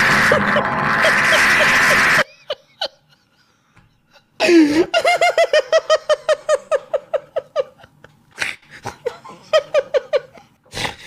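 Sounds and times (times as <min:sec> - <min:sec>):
man laughing hard: 0:00.0 - 0:03.5, 0:04.1 - 0:10.6.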